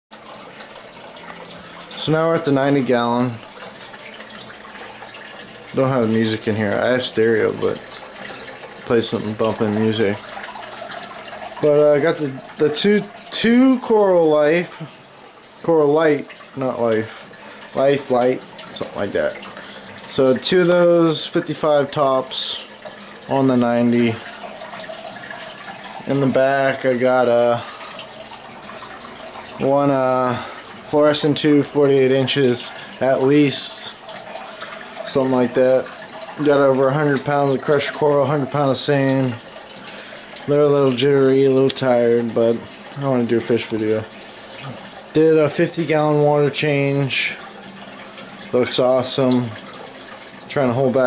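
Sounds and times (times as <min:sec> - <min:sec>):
aquarium water bubbling: 0:00.1 - 0:51.0.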